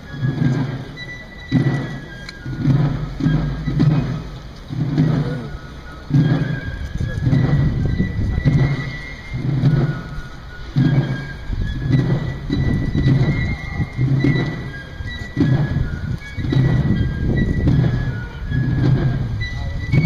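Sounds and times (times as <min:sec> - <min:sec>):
military drums beating: 0:00.0 - 0:20.0.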